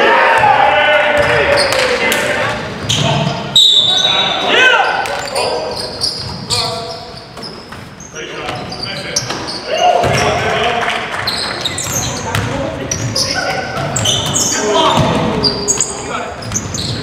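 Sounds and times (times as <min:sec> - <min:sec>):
sneakers squeaking on hardwood: 0:02.6 - 0:10.5, 0:11.2 - 0:17.0
basketball bouncing: 0:11.6 - 0:15.5.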